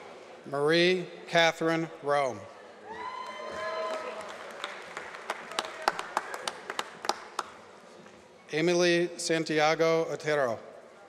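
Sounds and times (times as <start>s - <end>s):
audience applause: 3.2s - 7.5s.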